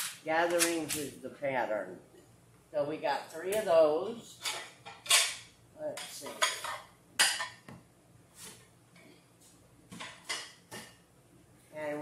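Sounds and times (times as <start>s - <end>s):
plates clinking: 4.4s - 5.5s, 6.2s - 7.8s.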